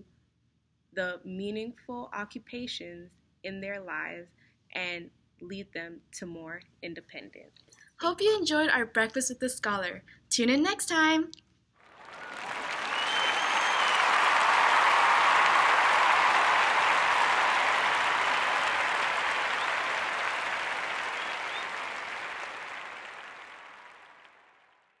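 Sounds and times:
crowd applause: 11.9s - 24.8s.

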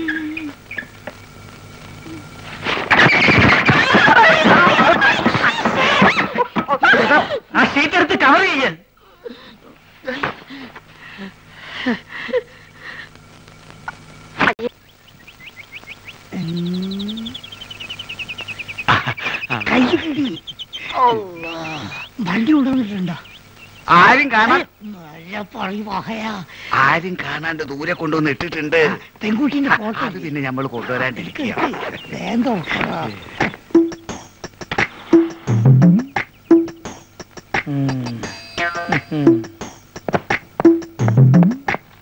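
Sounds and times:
birds chirping: 0.0s - 6.4s, 10.5s - 42.0s
man's descending wordless cry: 20.9s - 22.0s
people shouting: 20.9s - 22.0s.

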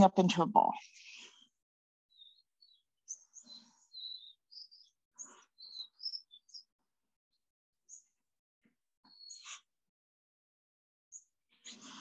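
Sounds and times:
small birds chirping: 0.0s - 9.9s, 11.1s - 12.0s.

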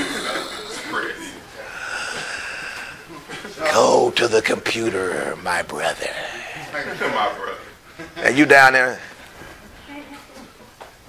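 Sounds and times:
man exhaling breathily: 1.6s - 3.3s.

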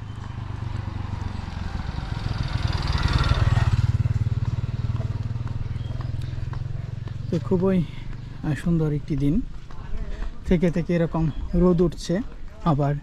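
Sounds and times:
motorcycle passing by: 0.0s - 9.8s.

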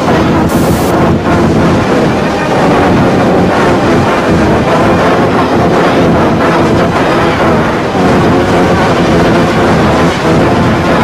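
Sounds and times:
harsh distorted noise: 0.0s - 11.0s.

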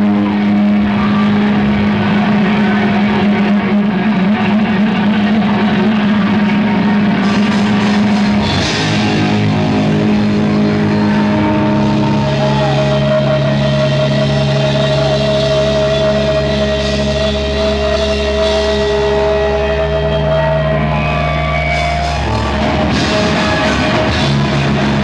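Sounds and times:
distorted electric guitar drone: 0.0s - 25.0s.

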